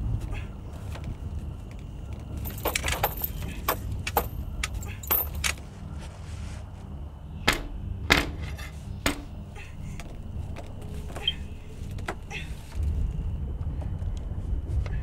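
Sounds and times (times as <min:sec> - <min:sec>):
steady low rumble: 0:00.0 - 0:15.0
sharp clicks and rattles: 0:01.7 - 0:05.6.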